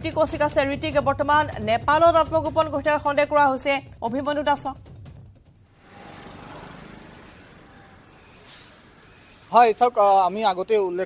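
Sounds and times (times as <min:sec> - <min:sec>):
outdoor street traffic noise: 0:05.8 - 0:11.0.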